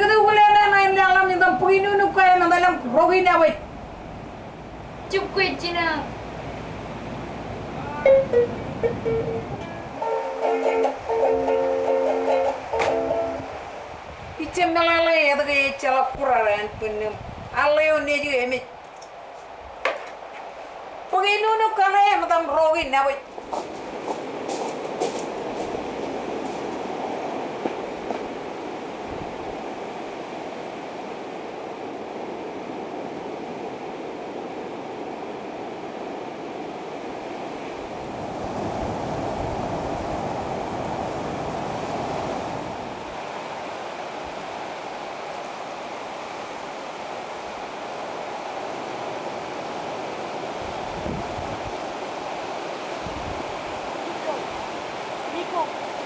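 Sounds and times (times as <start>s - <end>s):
steady rushing outdoor noise: 0.0s - 56.0s.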